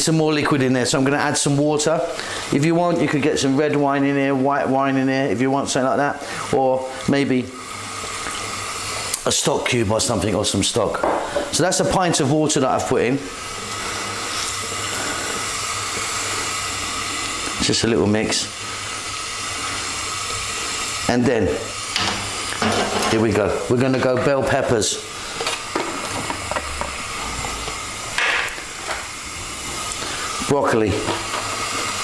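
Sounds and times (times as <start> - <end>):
stew bubbling in a wok: 6.2 - 9.3, 13.2 - 23.8, 25.0 - 32.0.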